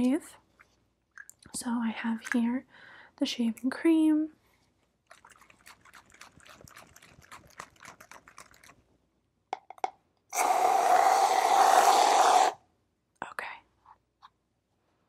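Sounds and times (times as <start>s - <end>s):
aerosol can hissing foam: 10.4s - 12.6s.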